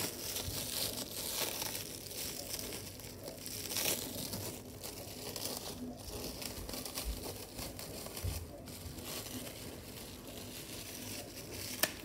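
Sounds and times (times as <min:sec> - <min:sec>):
rabbit chewing crunchily: 0:00.0 - 0:12.0.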